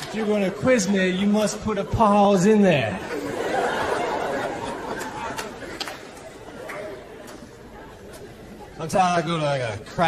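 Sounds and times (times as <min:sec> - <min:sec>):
audience laughing and murmuring: 0:00.0 - 0:10.0.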